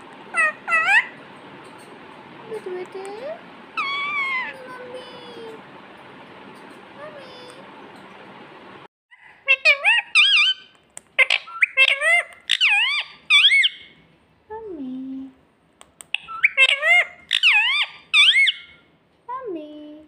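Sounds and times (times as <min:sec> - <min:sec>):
parakeet calling: 0:00.0 - 0:02.0, 0:03.7 - 0:05.6, 0:09.1 - 0:14.0, 0:16.1 - 0:18.9.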